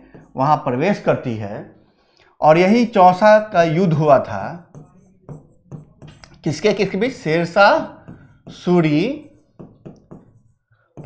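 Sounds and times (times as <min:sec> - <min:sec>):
marker pen tapping on whiteboard: 0:00.0 - 0:00.6, 0:04.1 - 0:11.0.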